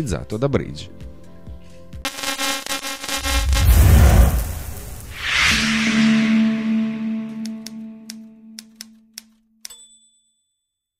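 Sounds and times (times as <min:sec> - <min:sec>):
short high ding: 0:09.7 - 0:10.4.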